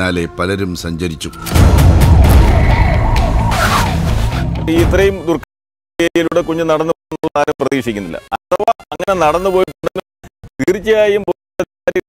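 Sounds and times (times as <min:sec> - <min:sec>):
deep loud rumble: 0:01.4 - 0:05.2
police siren wailing fast: 0:01.9 - 0:04.7.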